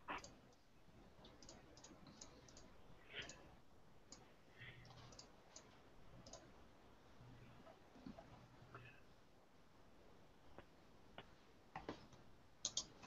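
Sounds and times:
faint clicks: 4.1s - 6.5s, 12.6s - 13.0s.

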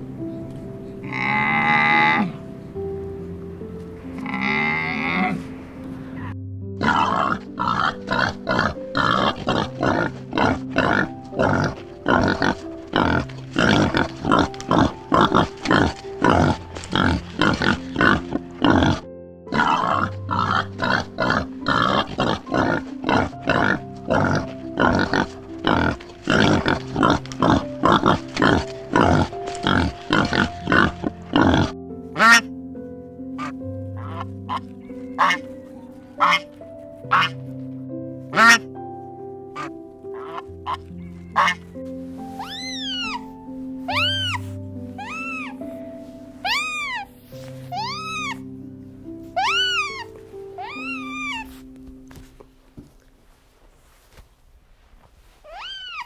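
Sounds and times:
background music: 0.0s - 53.4s
warthog chewing grain: 8.1s - 19.0s, 19.6s - 31.7s.

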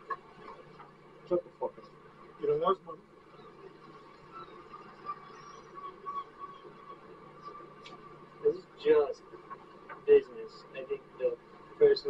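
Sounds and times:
faint background noise: 0.0s - 12.0s
high-pitched whine: 0.0s - 12.0s.

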